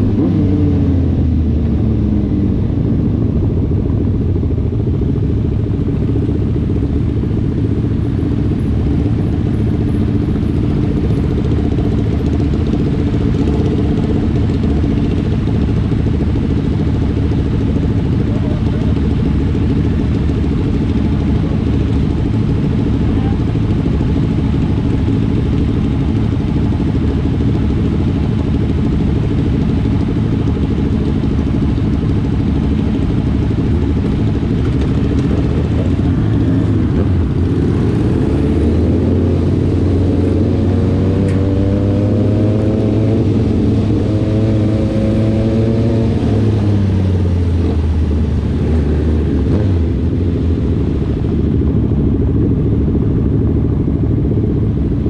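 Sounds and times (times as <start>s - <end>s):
motorcycle engines idling: 0.0s - 55.0s.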